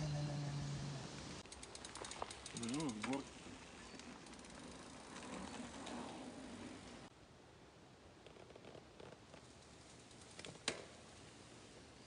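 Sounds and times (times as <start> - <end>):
voice-like hum: 0.0 - 1.3
bicycle freewheel ratchet clicking: 1.4 - 3.2.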